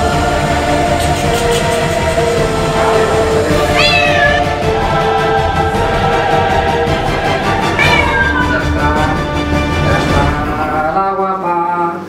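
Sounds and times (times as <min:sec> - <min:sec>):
cat meowing: 0:03.6 - 0:04.6, 0:07.8 - 0:08.8.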